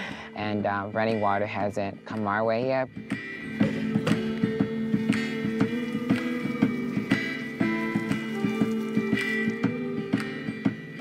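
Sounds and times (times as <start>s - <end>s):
picked guitar music: 0.6s - 11.0s.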